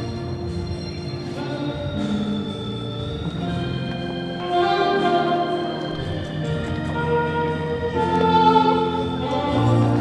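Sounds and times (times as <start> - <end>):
organ chords: 0.0 - 10.0
choir singing a hymn: 3.1 - 10.0.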